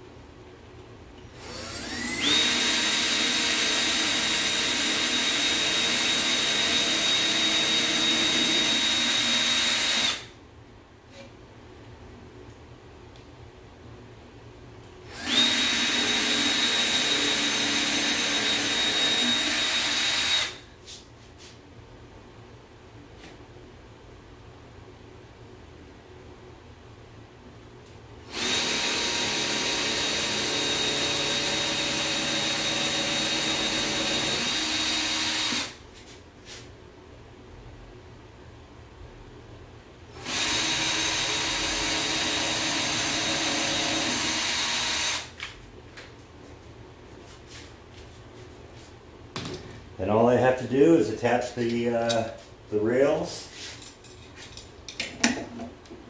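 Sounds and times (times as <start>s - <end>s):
cordless drill boring into wood: 1.4s - 10.3s, 15.1s - 20.6s, 28.3s - 35.8s, 40.2s - 45.3s.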